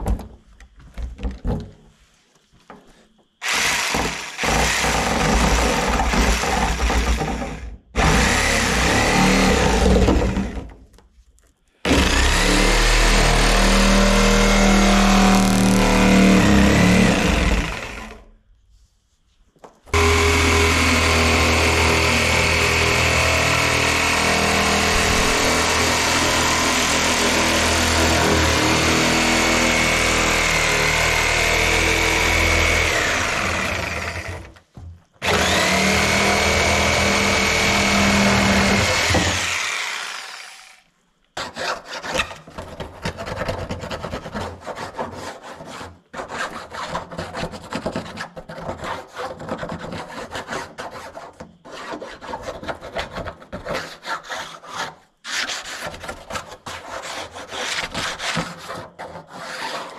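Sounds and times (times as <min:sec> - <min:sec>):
reciprocating saw cutting plastic: 0:03.4 - 0:10.8, 0:11.8 - 0:18.3, 0:19.9 - 0:59.9.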